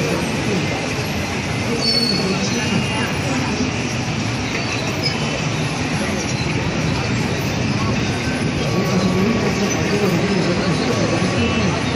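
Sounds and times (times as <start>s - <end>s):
city street traffic: 0.0s - 11.9s.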